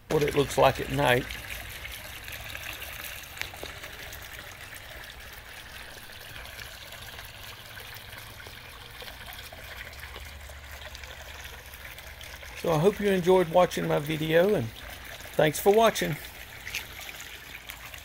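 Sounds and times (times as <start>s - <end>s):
water trickling and splashing: 0.0s - 18.0s.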